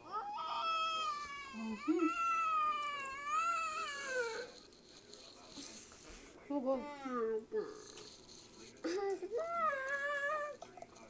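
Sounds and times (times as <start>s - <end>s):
child wailing: 0.0s - 4.5s.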